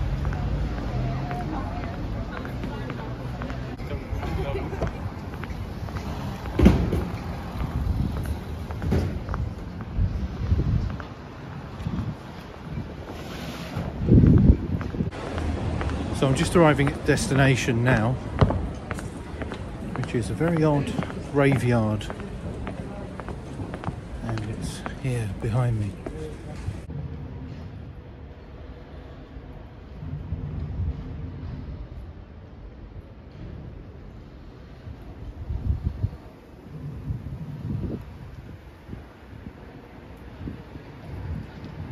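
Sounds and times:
city street noise: 0:00.0 - 0:41.9
vehicle engine rumbling: 0:00.0 - 0:41.9
wind buffeting microphone: 0:01.3 - 0:21.3, 0:29.6 - 0:41.9.

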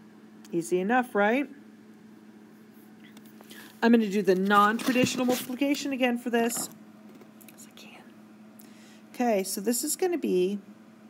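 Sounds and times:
low steady hum: 0:00.0 - 0:11.0
soft breath noise: 0:07.6 - 0:09.1.

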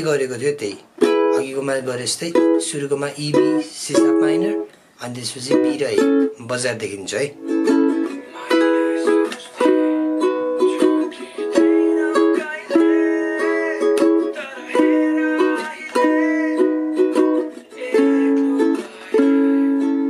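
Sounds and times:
ukulele strumming: 0:00.6 - 0:20.0.

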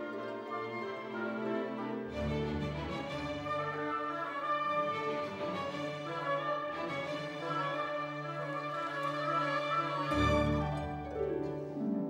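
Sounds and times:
orchestral strings sustained notes: 0:00.0 - 0:12.0.

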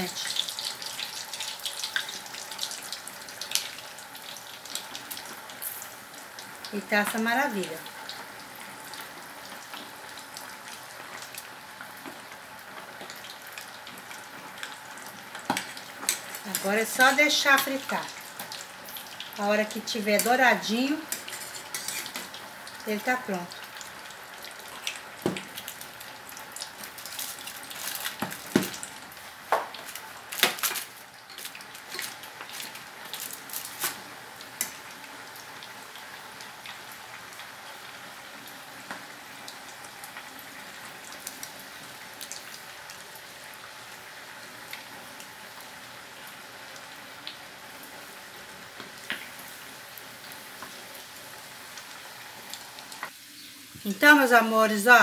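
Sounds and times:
pork sizzling in hot oil: 0:00.0 - 0:55.0.

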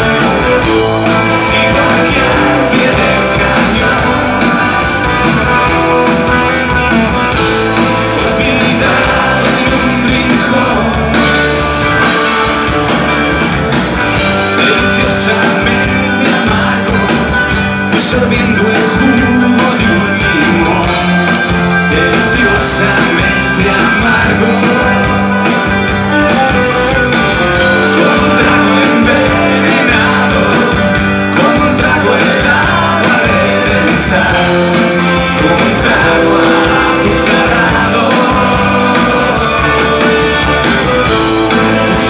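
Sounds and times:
electric guitars: 0:00.0 - 0:42.0
live rock band: 0:00.0 - 0:42.0.

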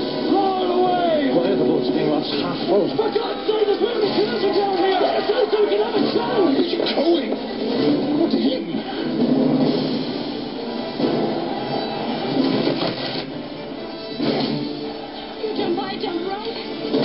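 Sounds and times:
trailer music: 0:00.0 - 0:17.0.

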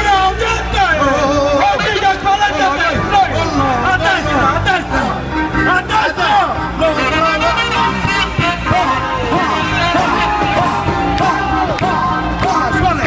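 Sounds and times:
man singing: 0:00.0 - 0:02.0, 0:03.0 - 0:13.0
crowd hubbub: 0:00.0 - 0:13.0
live band playing: 0:00.0 - 0:13.0.

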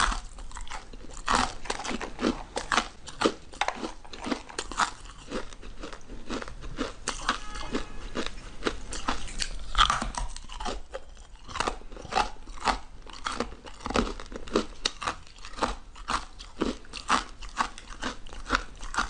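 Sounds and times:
ice crunching while chewed: 0:00.0 - 0:19.0.

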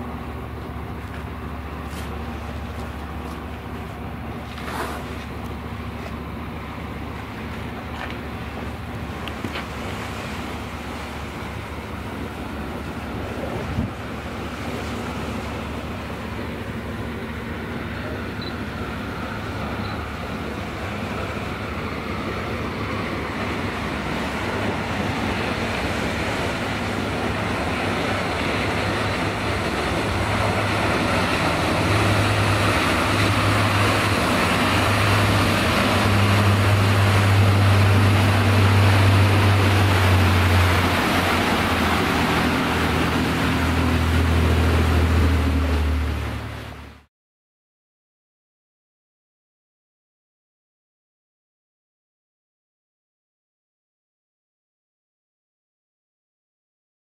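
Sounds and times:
boat diesel engines droning: 0:00.0 - 0:47.1
rush of spray and wind: 0:00.0 - 0:47.1.

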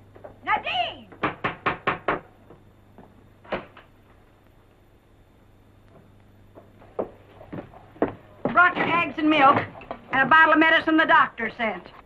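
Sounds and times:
woman calling out: 0:00.4 - 0:01.1
knocking: 0:01.2 - 0:02.3.

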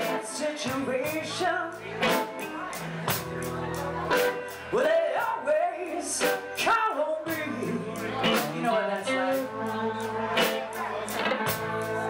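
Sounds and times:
woman singing: 0:00.0 - 0:02.8, 0:04.7 - 0:12.0
blues-rock band playing: 0:00.0 - 0:12.0.

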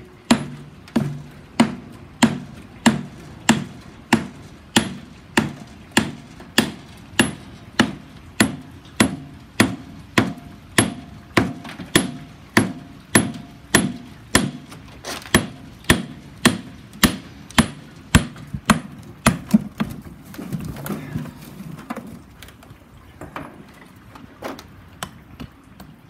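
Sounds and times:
hammer striking plaster: 0:00.3 - 0:14.7, 0:15.3 - 0:19.5.

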